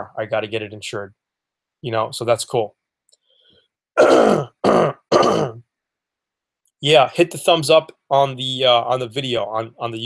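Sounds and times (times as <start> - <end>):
man coughing: 4.0 - 5.7.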